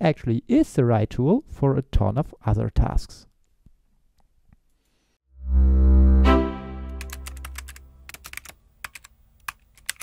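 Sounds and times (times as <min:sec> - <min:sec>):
keyboard typing clicks: 0:06.9 - 0:10.0.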